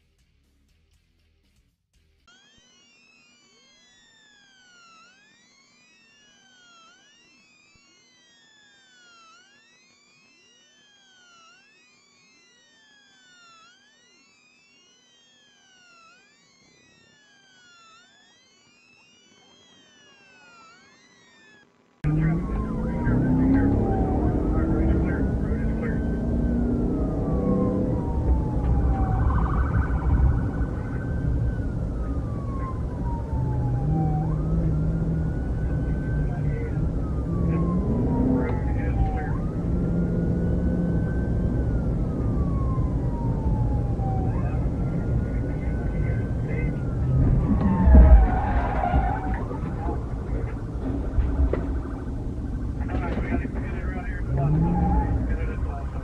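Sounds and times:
faint police sirens: 2.2s - 56.0s
police siren slow rise and fall: 2.3s - 56.0s
vehicle rumble and road noise: 22.0s - 56.0s.

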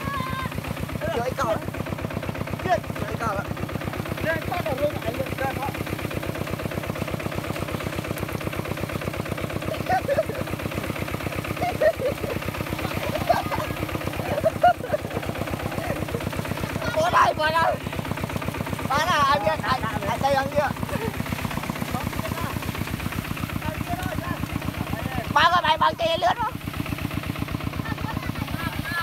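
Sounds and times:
tractor diesel engine under load: 0.0s - 29.0s.

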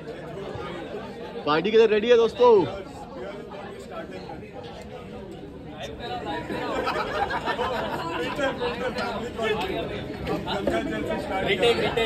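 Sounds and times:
overlapping group chatter: 0.0s - 12.0s.

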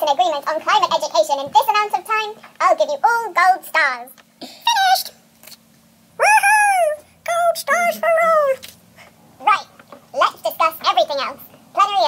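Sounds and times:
high squeaky voice: 6.2s - 8.6s.

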